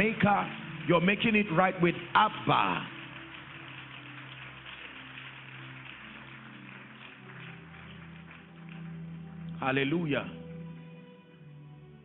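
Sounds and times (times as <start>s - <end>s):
congregation applauding: 0.0s - 11.5s
soft sustained musical chords: 0.0s - 12.0s.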